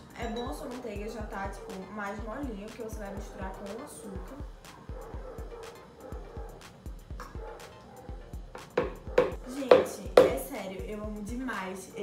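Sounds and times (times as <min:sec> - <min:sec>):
background music with beat: 0:00.0 - 0:11.5
sharp knocks: 0:08.6 - 0:10.3.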